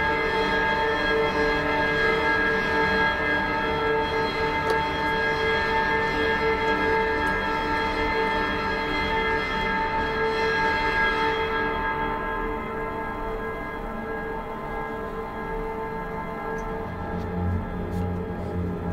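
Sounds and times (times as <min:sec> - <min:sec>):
eerie drone of bell-like tones: 0:00.0 - 0:18.9.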